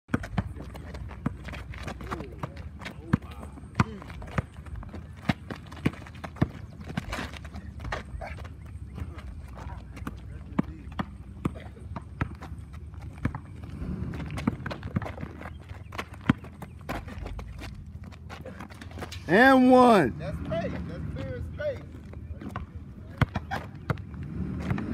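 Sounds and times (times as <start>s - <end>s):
basketball bouncing on asphalt: 0.1s - 19.2s, 21.0s - 24.9s
sneaker steps: 0.1s - 19.7s.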